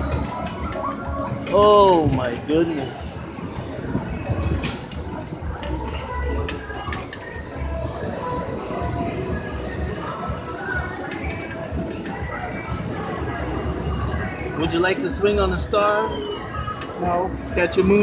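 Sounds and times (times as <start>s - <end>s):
ferris wheel rumble: 0.0s - 14.6s.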